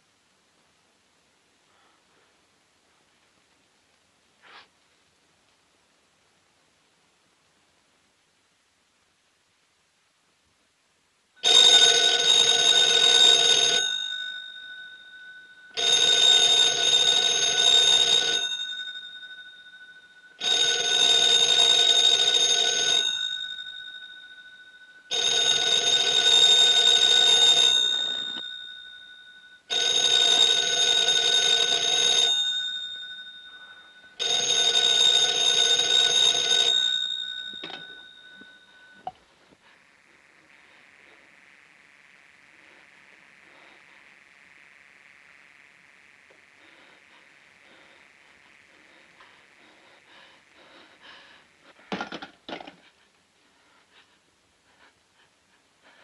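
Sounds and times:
telephone bell ringing: 0:11.4 - 0:41.3.

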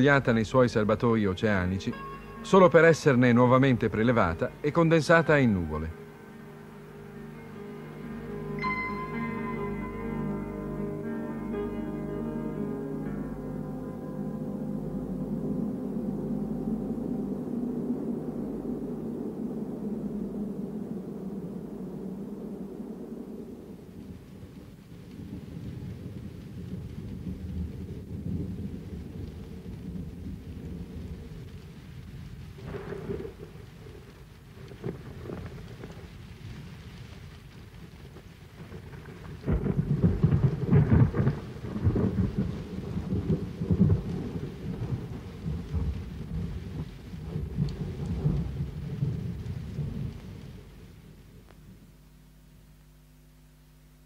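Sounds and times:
thunder rumbling: 0:00.0 - 0:51.9
loud thunder peal: 0:15.3 - 0:36.6, 0:38.1 - 0:51.4.

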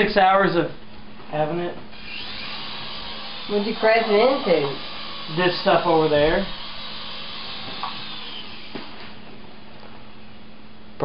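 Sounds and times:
toy helicopter motor whirring: 0:01.9 - 0:08.9.

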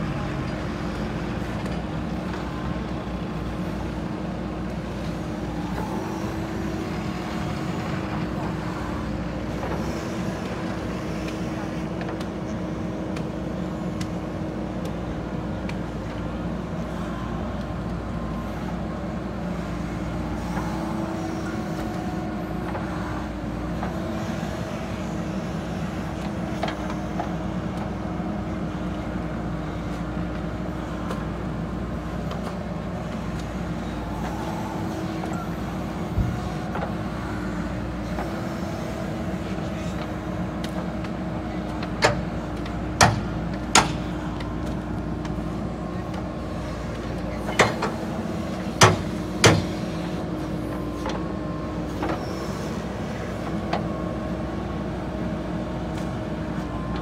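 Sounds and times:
diesel engine droning under load: 0:00.0 - 0:57.0.

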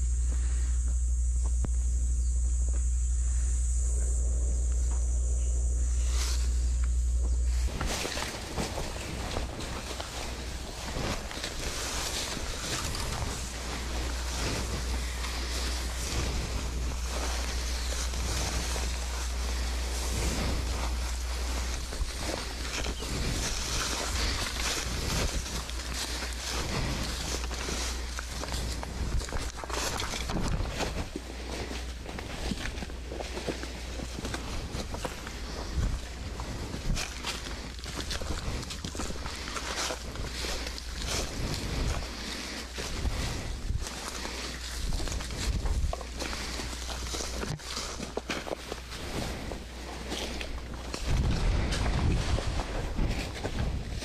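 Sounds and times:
footsteps on dry leaves: 0:00.0 - 0:54.0
vegetation rustling: 0:00.0 - 0:54.0
wind rumble on microphone: 0:00.0 - 0:54.0.

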